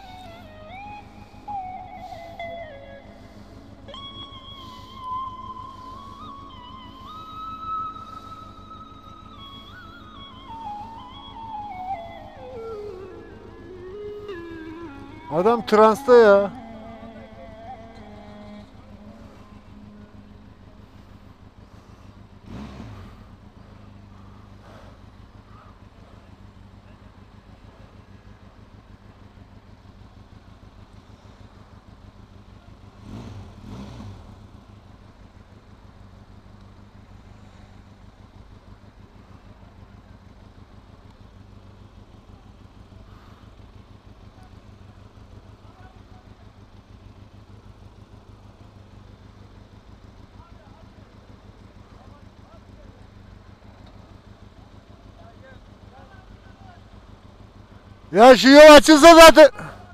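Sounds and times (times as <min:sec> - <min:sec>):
motorcycle engine idling: 0:00.0 - 0:58.7, 0:59.5 - 0:59.9.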